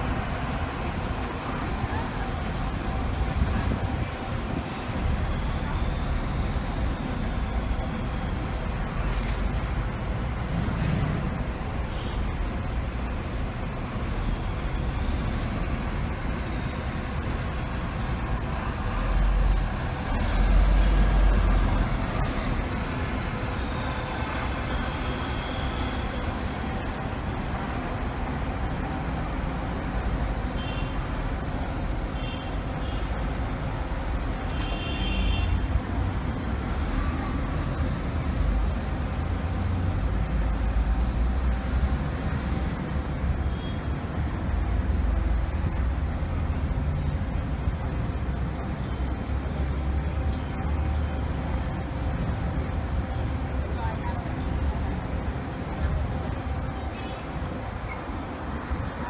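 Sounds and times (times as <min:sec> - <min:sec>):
buses engine rumble: 0:00.0 - 0:59.0.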